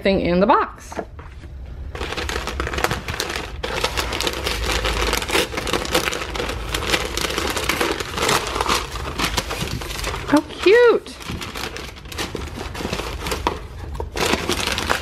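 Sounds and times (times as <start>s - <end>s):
paper crumpling: 1.9s - 15.0s.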